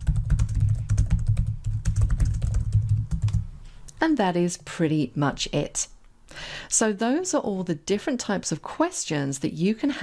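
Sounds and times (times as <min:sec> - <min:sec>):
fast typing on keyboard: 0:00.0 - 0:03.5.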